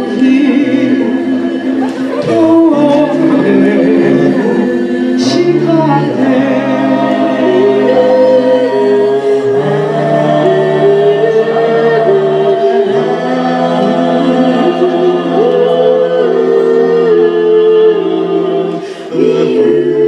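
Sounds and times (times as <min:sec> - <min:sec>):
group singing in harmony: 0:00.0 - 0:20.0.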